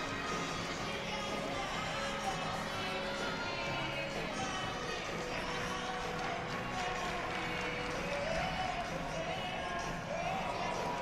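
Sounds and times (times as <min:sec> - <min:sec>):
background music: 0:00.0 - 0:11.0
low crowd murmur: 0:00.0 - 0:11.0.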